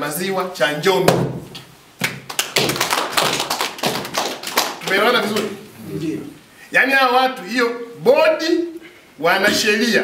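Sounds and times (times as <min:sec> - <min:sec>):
audience applauding: 0:02.3 - 0:05.4.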